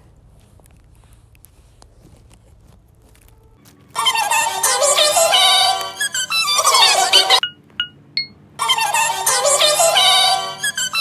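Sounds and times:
music with singing: 4.0s - 7.4s, 8.6s - 11.0s
short electronic beeps: 6.6s - 8.4s.

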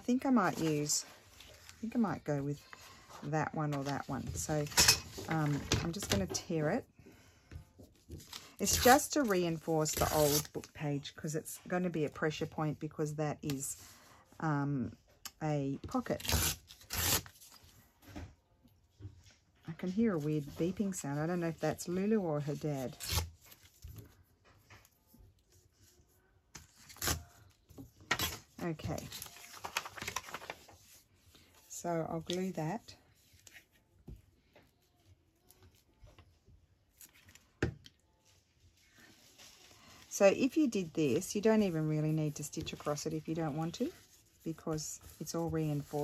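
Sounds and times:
paper tearing: 16.2s - 17.4s
paper rustling: 28.1s - 32.6s, 38.3s - 46.0s.

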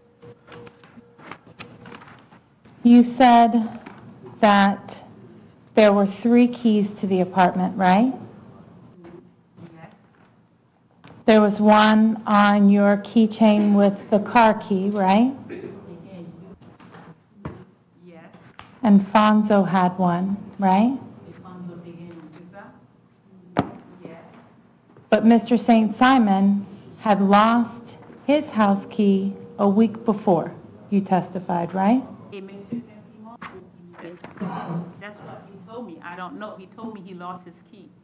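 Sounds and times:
faint steady hum: 0.0s - 38.0s.

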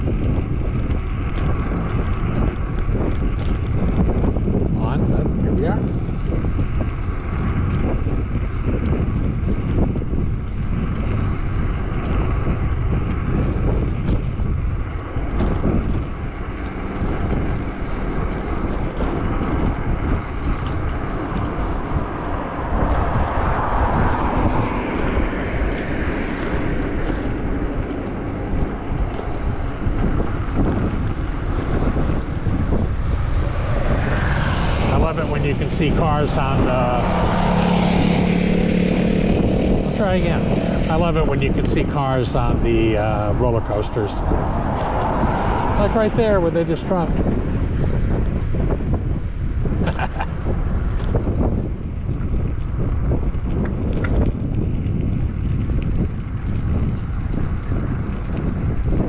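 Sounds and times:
road noise: 0.0s - 59.0s
wind rushing over microphone: 0.0s - 59.0s
motorbike engine passing: 0.9s - 51.5s.

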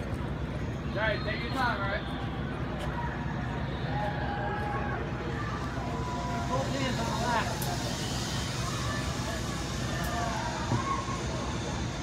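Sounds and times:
low outdoor rumble: 0.0s - 12.0s
people talking: 0.9s - 2.1s, 5.2s - 11.9s.

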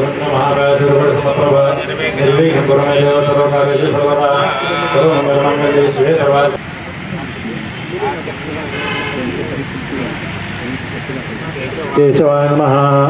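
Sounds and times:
faint outdoor noise: 0.0s - 13.0s
people talking quietly: 0.0s - 13.0s.

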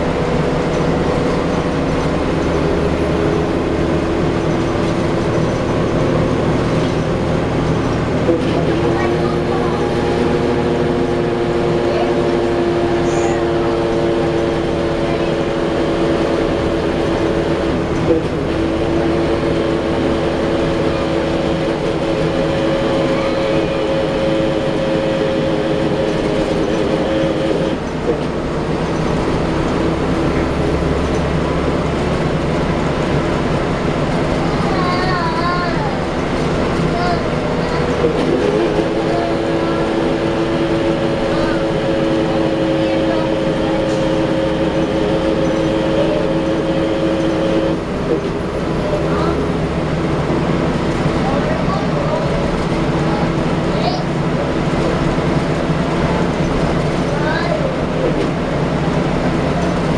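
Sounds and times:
bus engine rumble: 0.0s - 59.9s.

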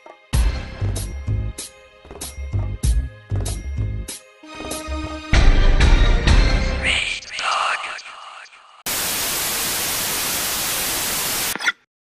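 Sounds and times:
television static hiss: 8.9s - 11.7s.

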